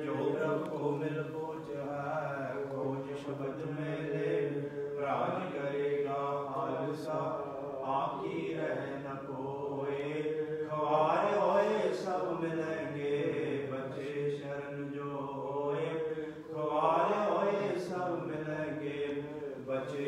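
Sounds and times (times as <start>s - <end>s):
person chanting devotional song: 0.0s - 20.0s.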